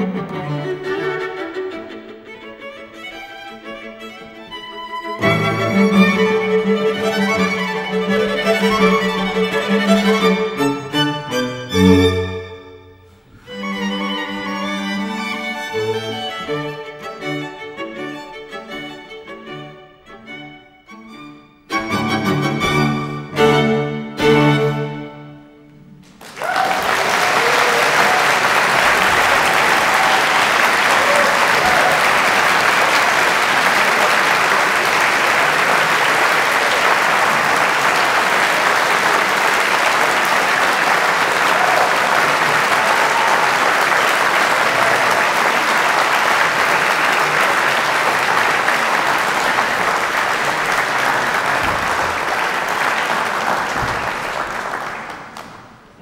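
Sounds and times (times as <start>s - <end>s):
audience applauding: 5.2s - 10.3s, 26.0s - 56.0s.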